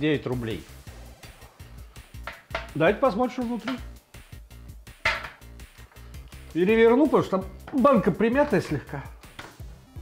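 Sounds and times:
quiet background music: 0:00.0 - 0:10.0
metal tin knocking on tabletop: 0:02.2 - 0:02.8, 0:05.0 - 0:05.5.

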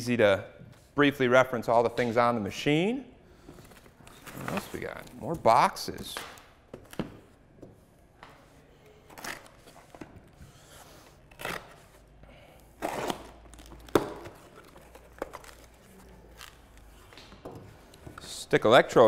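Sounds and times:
tape tearing: 0:11.2 - 0:12.0.

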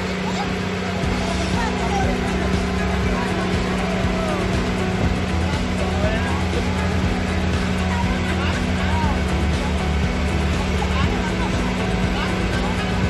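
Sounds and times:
boat engine droning: 0:00.0 - 0:13.0
faint voices: 0:00.0 - 0:13.0.

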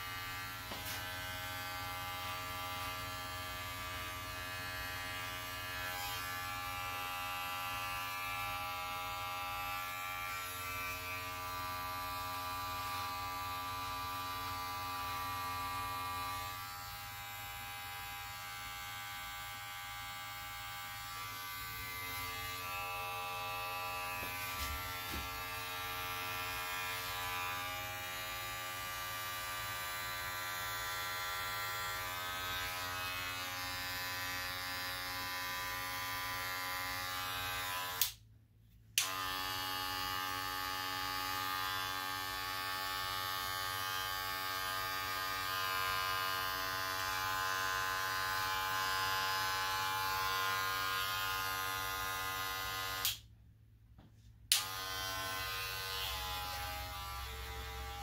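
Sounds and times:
electric hair clipper buzzing: 0:00.0 - 0:38.2, 0:39.0 - 0:53.3, 0:54.5 - 0:58.0.

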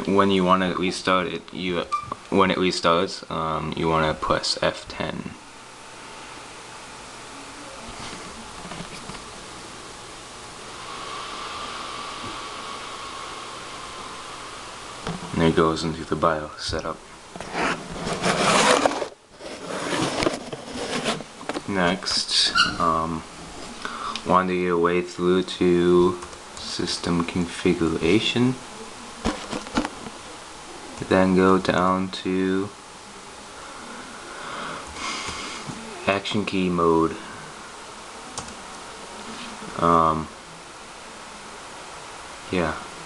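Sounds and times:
faint whine: 0:00.0 - 0:43.0
laptop cooling fan hiss: 0:00.0 - 0:43.0
steady background noise: 0:00.0 - 0:43.0.

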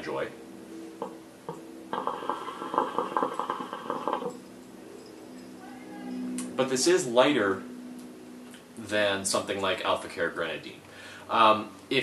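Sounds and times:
hookah water bubbling: 0:01.9 - 0:04.4.

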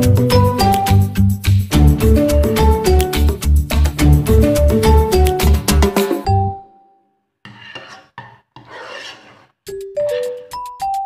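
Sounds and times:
spoon scraping in a pot: 0:07.5 - 0:10.5.

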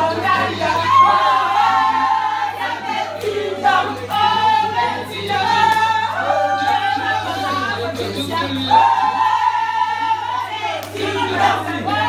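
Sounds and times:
group singing: 0:00.0 - 0:12.0.

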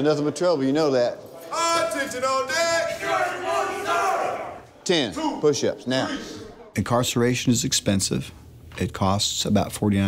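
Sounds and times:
men shouting in unison: 0:01.5 - 0:04.6.

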